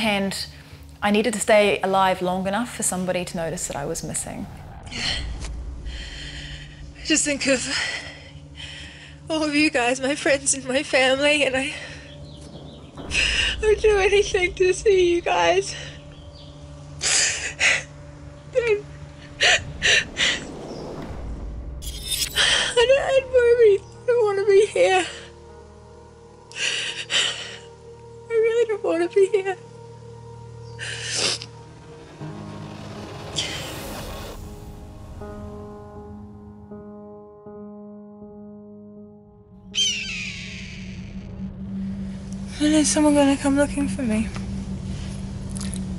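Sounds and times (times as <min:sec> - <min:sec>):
music drone: 0:03.7 - 0:36.6, 0:39.4 - 0:45.9.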